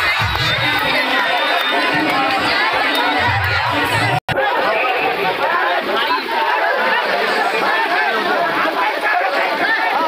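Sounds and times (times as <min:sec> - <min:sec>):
crowd babble: 0:00.0 - 0:10.0.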